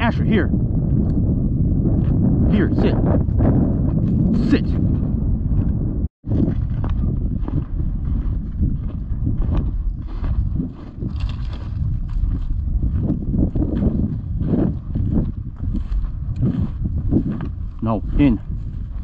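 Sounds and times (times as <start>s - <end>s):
wind buffeting microphone: 0.0s - 19.0s
footsteps crunching through grass and snow: 6.3s - 19.0s.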